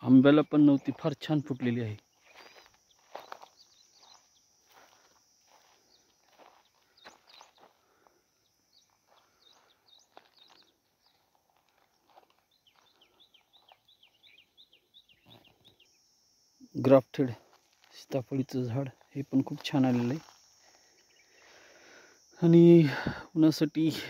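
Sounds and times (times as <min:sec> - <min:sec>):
man speaking: 0:00.0 - 0:02.0, 0:16.7 - 0:20.2, 0:22.4 - 0:24.0
faint high whine: 0:00.0 - 0:24.0
footsteps on dry soil and straw: 0:02.0 - 0:08.1, 0:08.8 - 0:13.9, 0:18.9 - 0:20.5.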